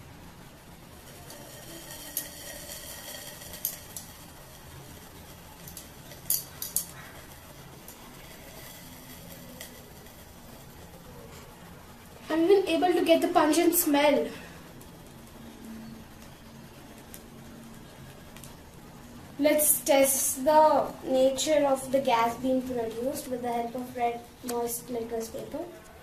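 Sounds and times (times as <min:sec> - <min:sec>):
faint steady background noise: 0:00.0 - 0:26.0.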